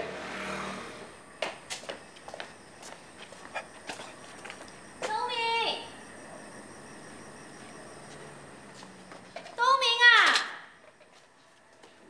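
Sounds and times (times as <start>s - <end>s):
footsteps on concrete floor: 1.3s - 5.4s, 7.5s - 9.6s, 10.8s - 12.0s.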